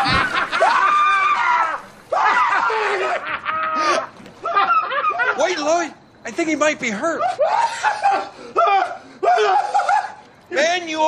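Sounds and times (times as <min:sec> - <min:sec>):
men snickering and laughing: 0:00.0 - 0:00.9, 0:02.7 - 0:05.5, 0:07.3 - 0:08.6.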